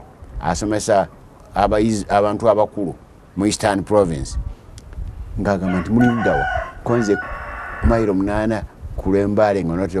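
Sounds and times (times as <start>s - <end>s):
man talking: 0.4s - 4.4s, 5.4s - 10.0s
rooster crowing: 5.6s - 8.2s.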